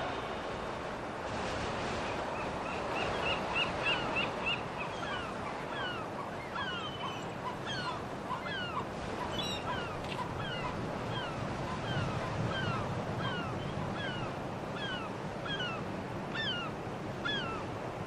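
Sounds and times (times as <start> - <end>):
birds calling: 2.7 - 15.8, 16.4 - 17.7.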